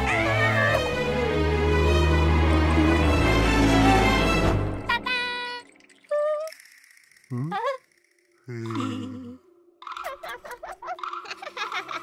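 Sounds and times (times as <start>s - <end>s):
cartoon voice high note: 4.8s - 6.5s.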